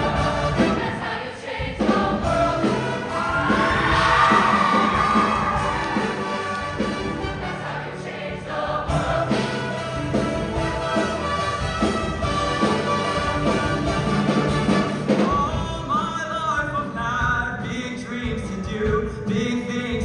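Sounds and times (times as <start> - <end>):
choir singing with accompaniment: 0.0 - 15.6.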